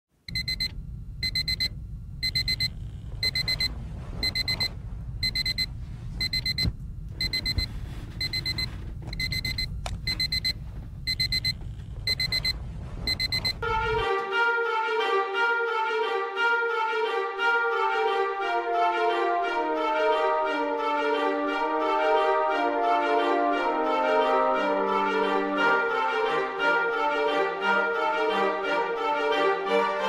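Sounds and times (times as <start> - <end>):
low steady rumble: 0.2 - 14.5
phone alarm beeping: 0.3 - 13.6
music: 13.6 - 30.0.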